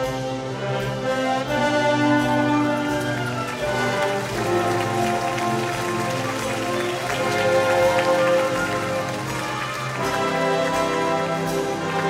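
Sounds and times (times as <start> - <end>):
wind band playing: 0.0 - 12.0.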